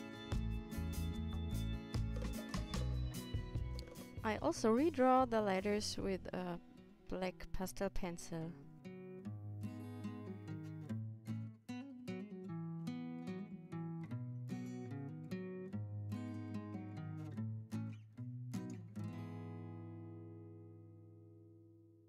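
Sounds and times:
acoustic guitar picking: 0.0 - 5.2, 8.6 - 21.5.

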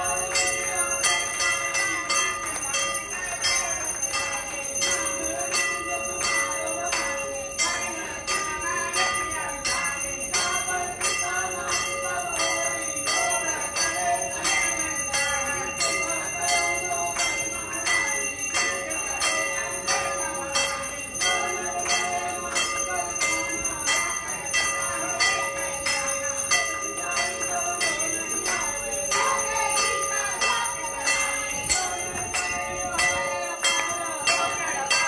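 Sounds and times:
temple bells ringing: 0.0 - 35.0
voices: 0.0 - 35.0.

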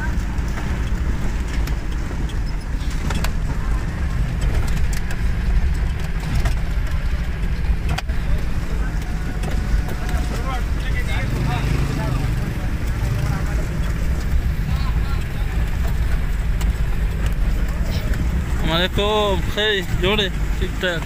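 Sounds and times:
tyres on rocky dirt track: 0.0 - 21.0
vehicle engine rumble: 0.0 - 21.0.

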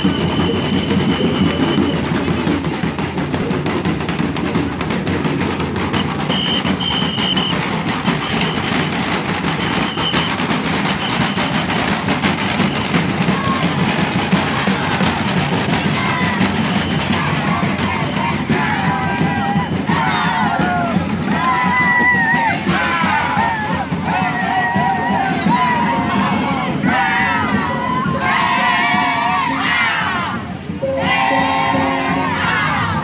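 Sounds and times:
hand drums beaten fast: 0.0 - 29.3
crowd voices: 0.0 - 33.0.

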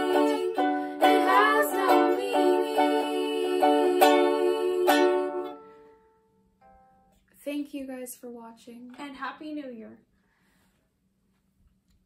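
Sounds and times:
ukulele strumming: 0.0 - 7.1.

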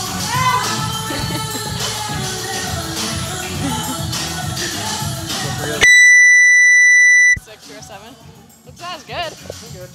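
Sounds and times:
music with a beat: 0.0 - 9.9
high-pitched electronic beep: 5.8 - 7.4.

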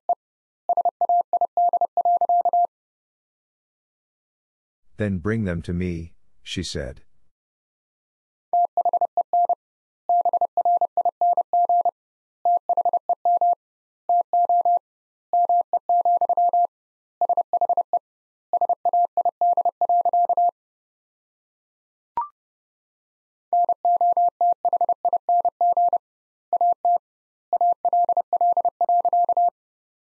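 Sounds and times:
morse code beeps: 0.7 - 2.7, 8.6 - 11.9, 12.5 - 14.8.

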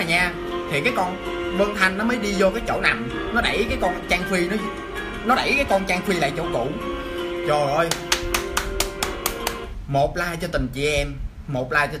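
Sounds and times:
background music sustained notes: 0.0 - 9.8
person clapping hands: 7.8 - 9.7.

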